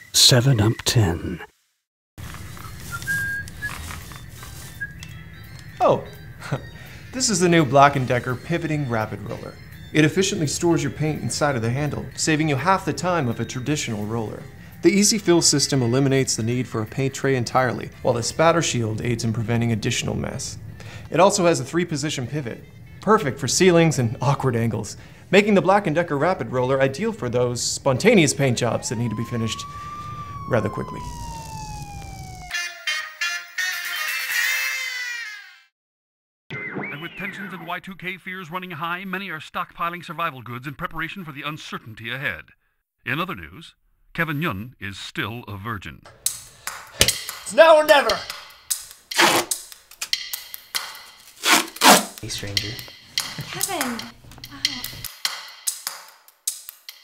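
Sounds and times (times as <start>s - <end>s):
person whistling: 2.5s - 6.8s
siren wailing: 28.4s - 33.1s.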